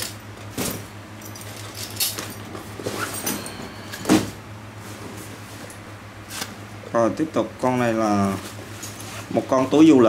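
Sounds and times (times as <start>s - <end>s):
bag thump: 4.0s - 4.4s.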